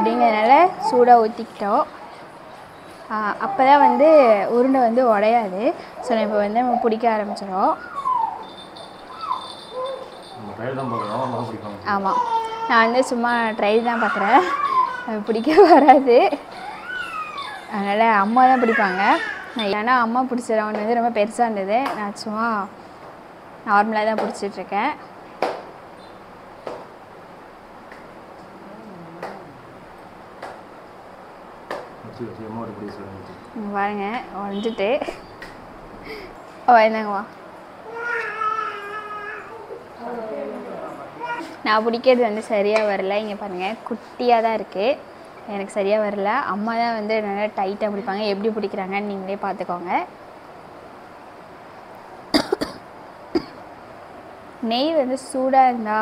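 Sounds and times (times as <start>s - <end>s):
faint room hiss: 0.0s - 56.0s
person coughing: 52.4s - 52.8s.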